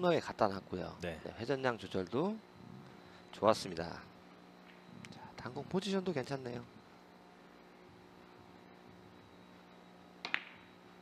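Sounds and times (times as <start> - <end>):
billiard balls clicking: 10.2 - 10.7.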